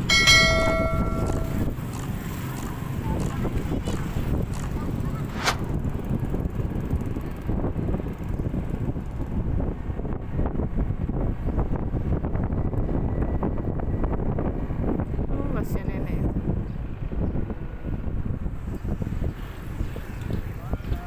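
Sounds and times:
scooter engine rumble: 0.0 - 9.5
wind buffeting microphone: 0.0 - 21.0.

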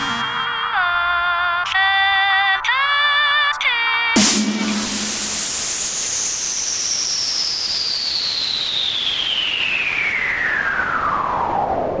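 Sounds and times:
synthesized downlifter whistle: 0.0 - 1.6, 4.6 - 12.0.

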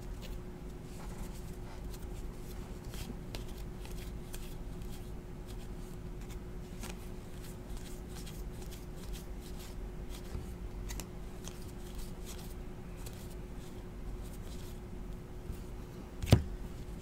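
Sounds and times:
steady low hum: 0.0 - 17.0
cards being flipped through: 2.8 - 14.8.

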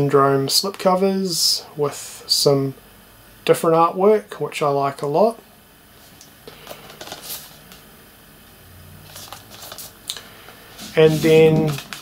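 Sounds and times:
steady low hum: 0.0 - 12.0
cardboard slipcover rustling: 6.6 - 7.6, 9.0 - 10.0, 10.6 - 12.0.

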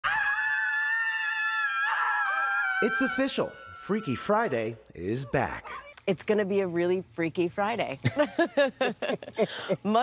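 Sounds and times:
woman screaming high-pitched: 0.0 - 4.2.

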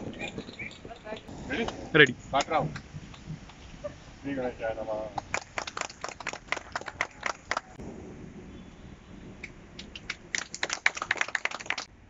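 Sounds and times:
people clapping: 5.1 - 7.8, 9.8 - 11.9.

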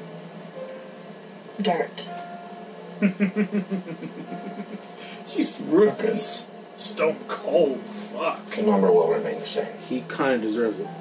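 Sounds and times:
man laughing: 3.0 - 5.2.

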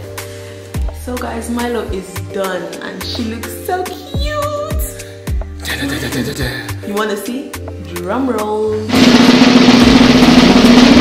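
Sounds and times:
snare drum roll: 8.9 - 11.0.

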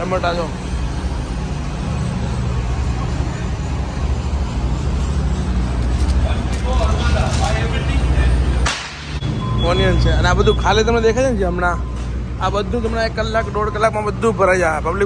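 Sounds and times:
low machinery rumble: 0.0 - 15.0.

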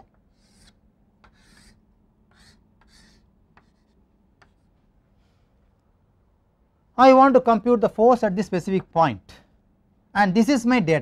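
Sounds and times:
chalk tapping: 0.0 - 4.8
chalk scratching on blackboard: 0.3 - 4.8.

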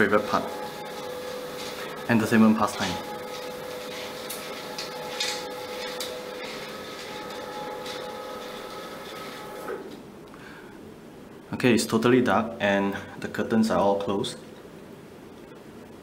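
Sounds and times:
electric motor hum: 0.0 - 10.0
curtains sliding and rubbing: 3.2 - 9.8.

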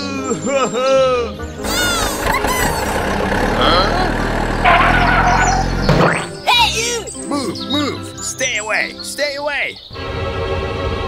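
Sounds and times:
squeaky chirps: 1.6 - 3.2, 4.5 - 10.0
truck engine running: 1.6 - 6.1.

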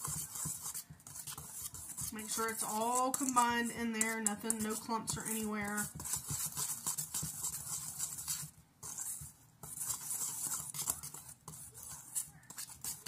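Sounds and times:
whisk swishing in a bowl: 0.0 - 13.0.

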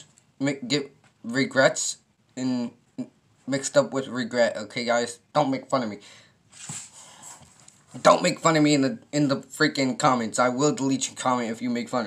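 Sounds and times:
person breathing: 6.0 - 7.6.

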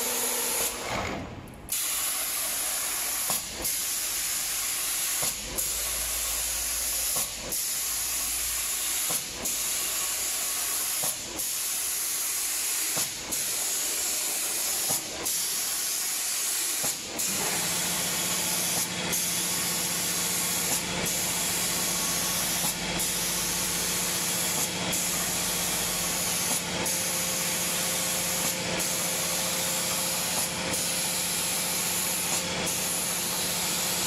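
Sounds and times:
spray gun hissing: 0.0 - 0.8, 1.7 - 34.0.

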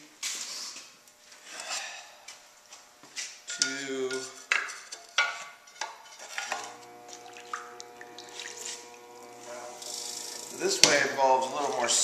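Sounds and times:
potter's wheel motor humming: 6.3 - 12.0.

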